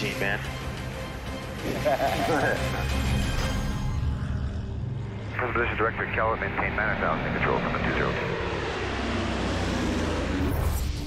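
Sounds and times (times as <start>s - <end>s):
propeller plane engines rumbling: 4.9s - 10.4s.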